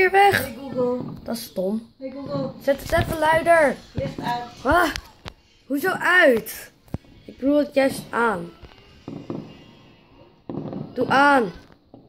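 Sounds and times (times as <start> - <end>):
fireworks bangs: 9.0 - 12.0.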